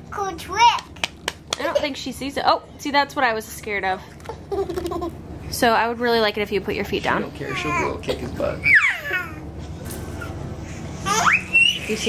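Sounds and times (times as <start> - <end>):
baby squealing: 8.6 - 9.4, 11.1 - 11.9.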